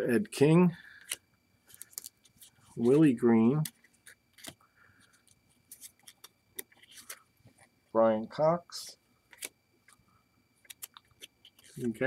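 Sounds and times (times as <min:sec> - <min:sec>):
trading cards clicking and sliding: 0:01.0 - 0:07.7, 0:10.6 - 0:12.0.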